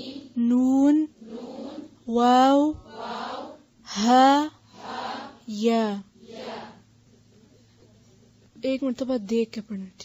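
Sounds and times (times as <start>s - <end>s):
woman reciting letter names: 0.0s - 6.8s, 8.6s - 10.0s.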